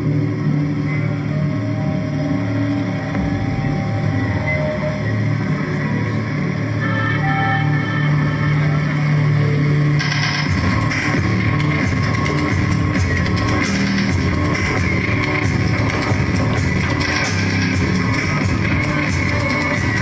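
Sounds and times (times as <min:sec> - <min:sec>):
slow held instrumental notes: 0:00.0 - 0:10.8
bright dense music layer: 0:00.0 - 0:20.0
low drone: 0:00.0 - 0:20.0.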